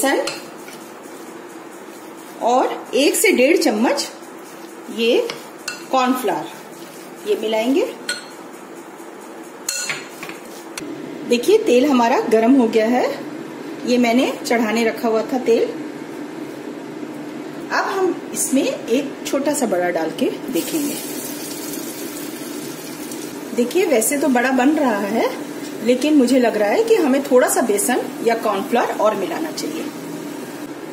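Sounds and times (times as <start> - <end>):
metal spoon clinking glass bowl: 8.0 - 8.4, 9.7 - 10.1
fritter sizzling in hot oil: 20.5 - 30.7.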